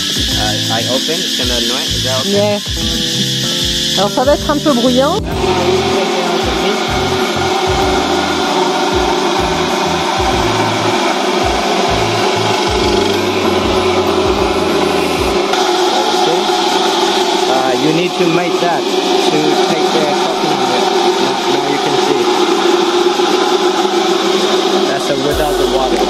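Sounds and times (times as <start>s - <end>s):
electric coconut grater scraping: 0.0s - 26.0s.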